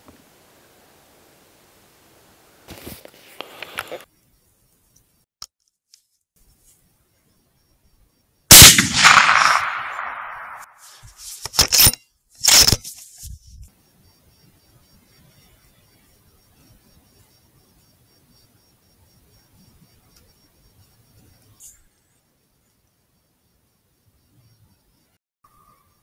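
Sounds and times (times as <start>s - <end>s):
rifle shot with rolling echo: 8.5s - 10.8s.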